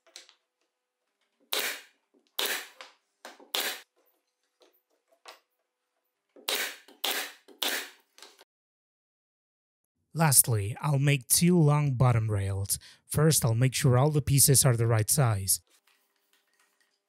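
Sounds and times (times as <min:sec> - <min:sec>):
pneumatic nail gun shots: 0:01.5 - 0:02.8, 0:03.5 - 0:03.8, 0:06.5 - 0:08.0.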